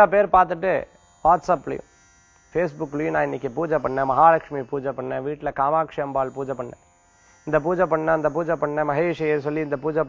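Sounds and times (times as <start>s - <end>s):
man speaking: 0.0s - 1.9s, 2.6s - 6.8s, 7.5s - 10.0s
high electrical buzz: 0.0s - 10.0s.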